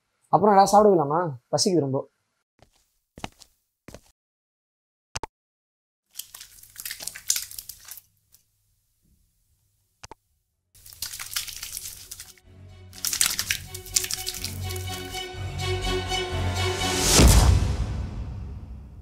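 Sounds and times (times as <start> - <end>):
soapy hands rubbing together: 6.1 - 8.4, 10.8 - 15.2
music with held notes: 12.4 - 17.8.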